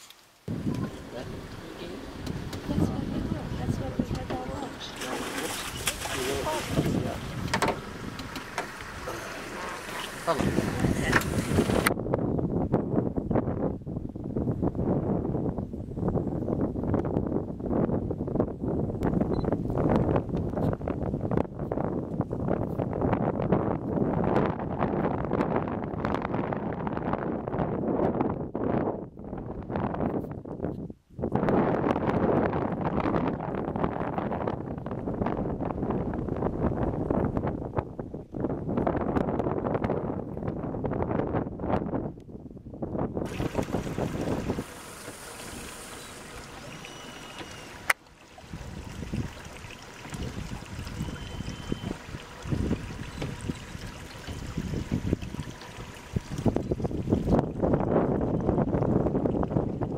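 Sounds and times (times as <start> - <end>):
wind buffeting microphone: 0.5 - 59.9.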